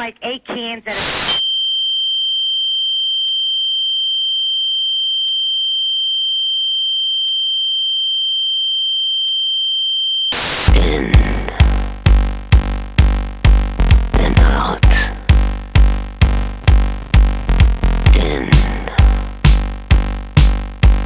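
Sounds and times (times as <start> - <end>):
burst of static: 0.7 - 1.4, 10.4 - 21.0
high-pitched sine test tone: 1.0 - 10.8
electronic dance music: 10.5 - 21.0.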